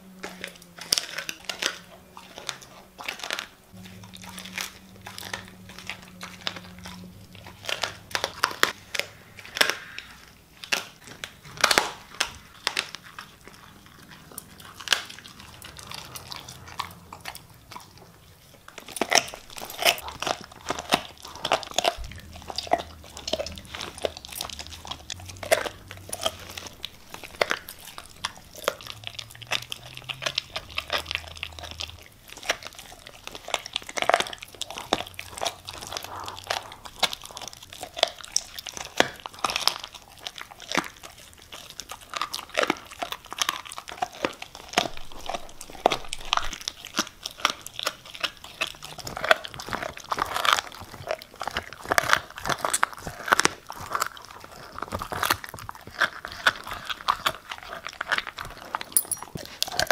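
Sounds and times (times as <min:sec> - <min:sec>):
dog chewing bone: 0:00.0 - 0:59.9.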